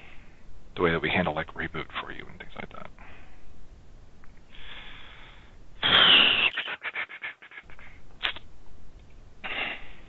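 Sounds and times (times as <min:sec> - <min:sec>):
breath into microphone: 0:04.5 - 0:05.6.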